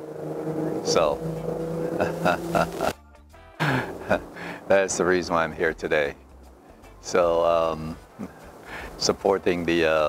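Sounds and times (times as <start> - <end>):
steady low hum: 0.0 - 6.8
man speaking hesitantly: 0.7 - 1.2
man laughing: 1.8 - 3.0, 3.6 - 4.7, 8.1 - 8.4.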